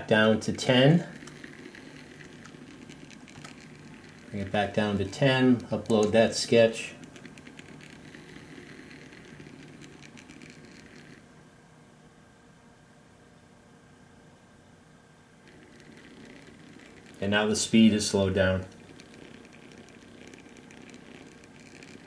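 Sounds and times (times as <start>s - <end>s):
stepper motor ticking buzz: 0.0s - 11.3s, 15.4s - 22.0s.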